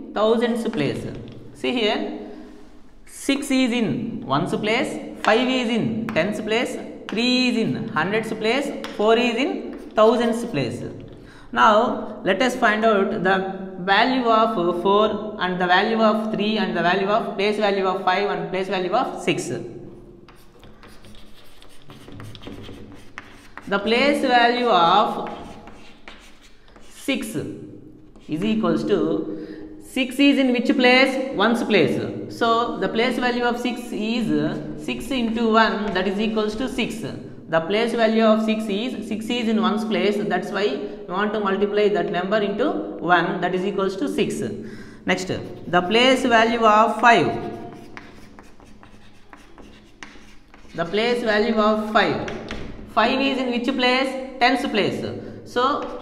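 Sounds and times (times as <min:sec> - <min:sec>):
chalk tapping: 0:08.8 - 0:09.1, 0:09.7 - 0:10.2, 0:20.3 - 0:27.0, 0:28.1 - 0:28.6, 0:47.0 - 0:51.3, 0:55.8 - 0:56.0
chalk scratching on a chalkboard: 0:20.3 - 0:27.1, 0:28.1 - 0:28.5, 0:45.2 - 0:46.3, 0:47.0 - 0:51.3, 0:55.8 - 0:56.0.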